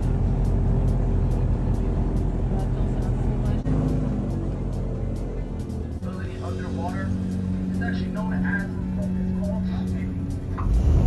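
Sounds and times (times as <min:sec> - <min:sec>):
airboat engine and propeller drone: 0:00.0 - 0:10.8
man speaking: 0:06.0 - 0:10.2.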